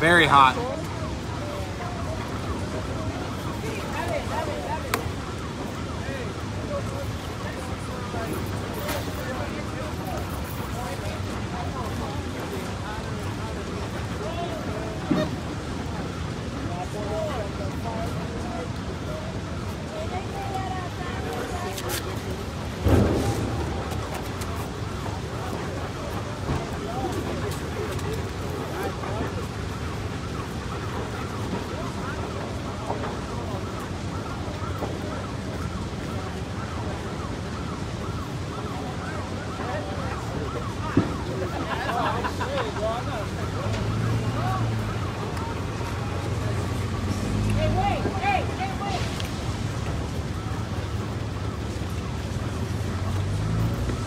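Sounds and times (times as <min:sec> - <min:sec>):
building fire rushing: 0:00.0 - 0:54.0
loud bang: 0:22.8 - 0:24.0.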